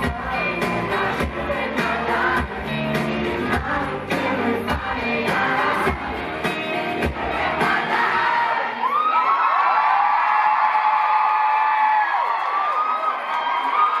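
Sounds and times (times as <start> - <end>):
rock band playing: 0.0 - 8.2
crowd cheering and screaming: 4.6 - 14.0.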